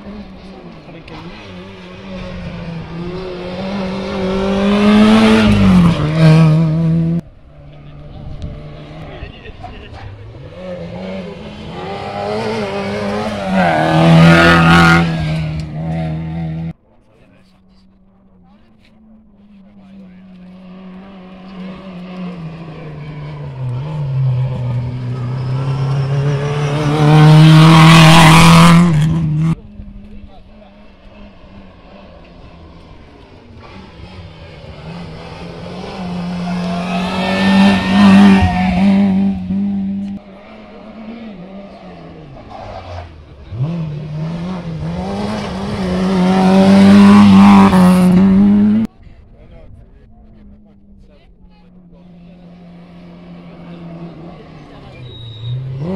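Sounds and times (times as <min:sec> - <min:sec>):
rally car engines revving: 0:00.0 - 0:55.9.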